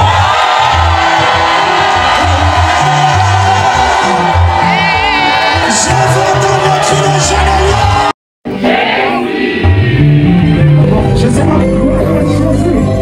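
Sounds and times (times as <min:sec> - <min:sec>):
band with rhythmic bass line: 0:00.0 - 0:13.0
gospel choir singing: 0:00.9 - 0:10.8.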